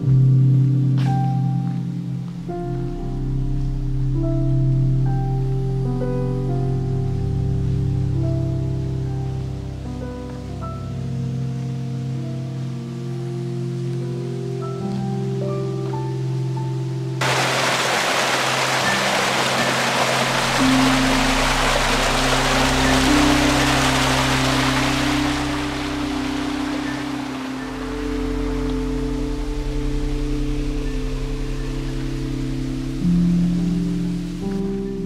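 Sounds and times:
slow sustained chords music: 0.0 - 35.0
loud hiss: 17.2 - 29.3.

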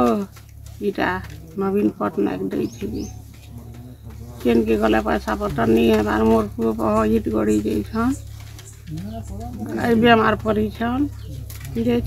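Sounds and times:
elderly woman speaking: 0.0 - 3.3, 4.4 - 8.3, 9.6 - 12.0
steady low hum: 0.0 - 12.0.

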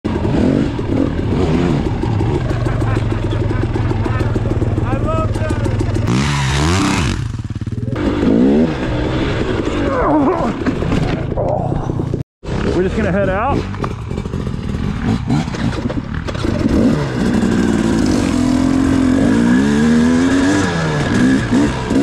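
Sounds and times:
dirt bike engine revving: 0.1 - 11.1, 12.5 - 22.0.

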